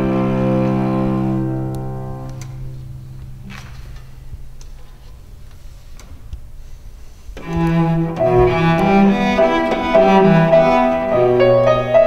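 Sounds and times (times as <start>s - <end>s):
cello and piano chord: 0.0s - 3.8s, 7.4s - 12.0s
soft rustle: 0.6s - 9.3s.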